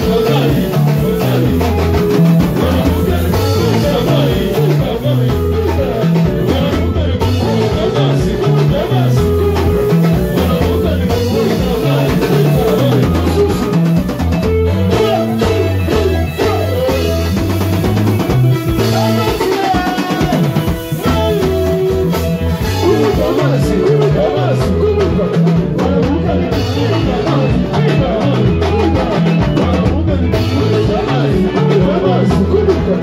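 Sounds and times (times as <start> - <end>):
drum kit: 0.0 - 33.0
electric guitar: 0.0 - 33.0
person singing into a microphone: 0.0 - 33.0.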